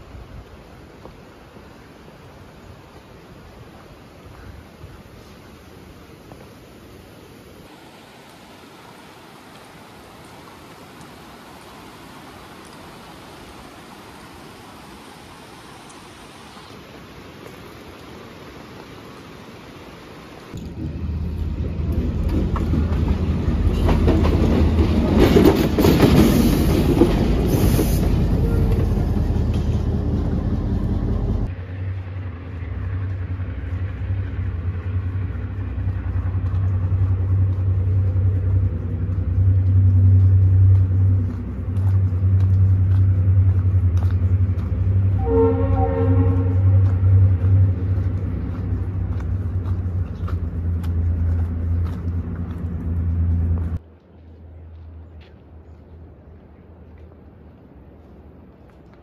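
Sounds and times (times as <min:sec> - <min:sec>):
diesel train rumbling: 0:20.5 - 0:58.0
train horn blast: 0:28.4 - 0:29.1, 0:44.9 - 0:47.9.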